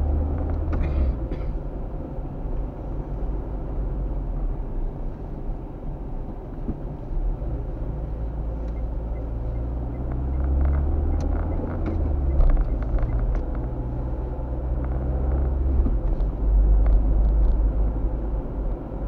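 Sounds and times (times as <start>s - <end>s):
car engine and road noise: 0.0s - 19.0s.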